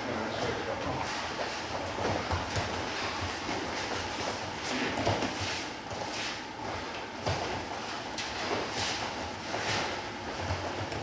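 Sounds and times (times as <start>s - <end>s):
bare feet shuffling on mats: 0.3s - 11.0s.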